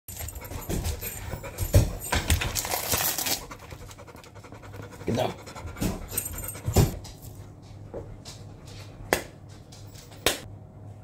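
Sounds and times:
dog panting: 0.1 - 8.7
plastic wrapping crinkling: 2.3 - 3.6.

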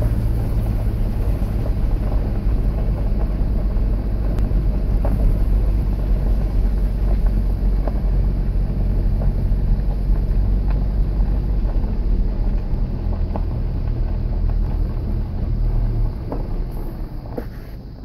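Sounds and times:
vehicle engine rumble: 0.0 - 18.0.

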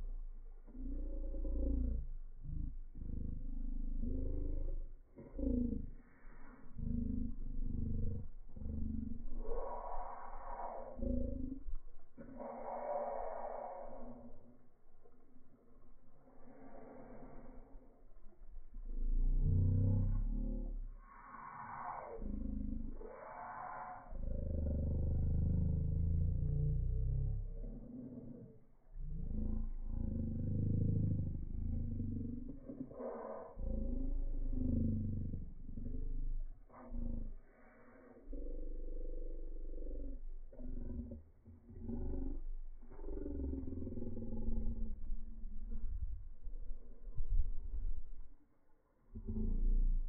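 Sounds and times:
deep slowed growling rumbles: 0.0 - 50.0.

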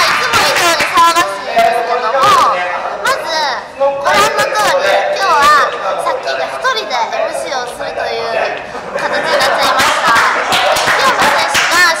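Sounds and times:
lively talking voices: 0.0 - 12.0.

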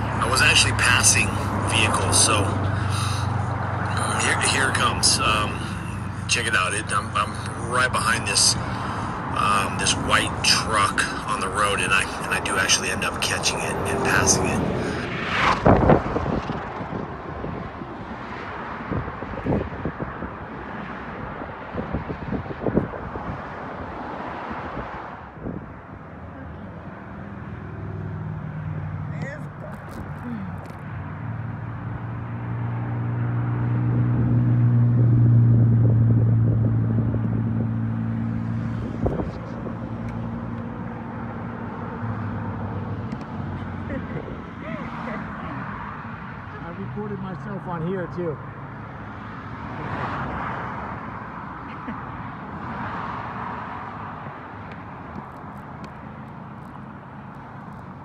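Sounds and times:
passing vehicle engine drone: 0.0 - 58.0
wind buffeting microphone: 14.1 - 26.1, 38.4 - 40.9.

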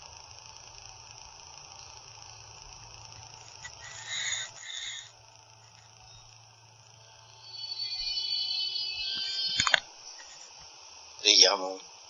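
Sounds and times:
steady hiss: 0.0 - 12.0
low hum: 3.1 - 10.5
short high-pitched squeaks: 7.4 - 10.4.

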